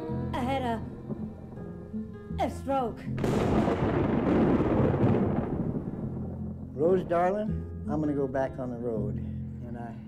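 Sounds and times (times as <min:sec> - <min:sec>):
thunder rumbling: 0:03.2 - 0:07.5.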